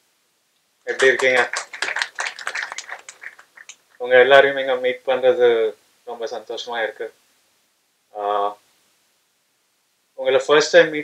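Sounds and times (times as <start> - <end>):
audience clapping: 0.9 - 4.0.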